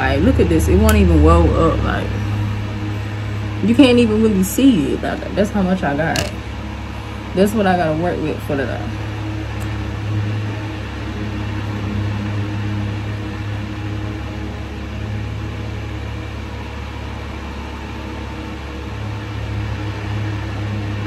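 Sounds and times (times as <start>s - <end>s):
electric fans running: 0.0s - 21.0s.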